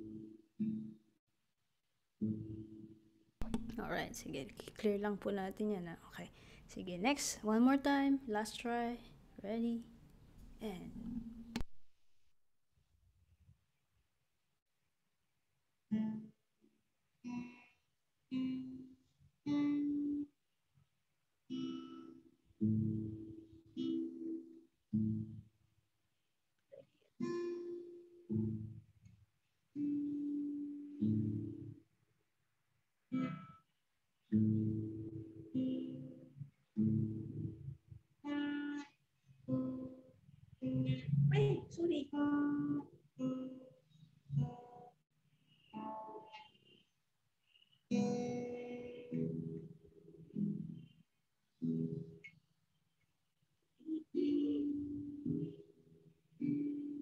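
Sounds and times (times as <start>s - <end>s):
acoustic guitar playing: 0.0s - 1.1s, 2.2s - 5.8s, 18.3s - 20.3s, 21.5s - 25.5s, 26.9s - 28.9s, 29.7s - 31.9s, 33.0s - 52.4s, 53.8s - 57.0s.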